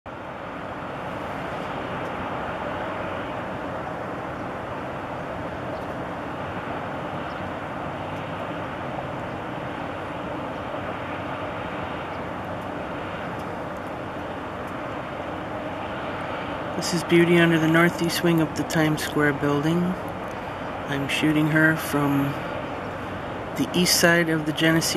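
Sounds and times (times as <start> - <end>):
distant traffic rumble: 0.1 - 24.9
low machinery hum: 0.1 - 24.9.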